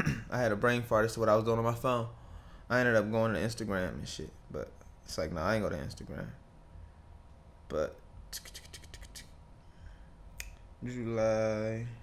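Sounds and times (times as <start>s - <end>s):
man speaking: 0.0s - 6.4s, 7.7s - 9.3s, 10.8s - 12.0s.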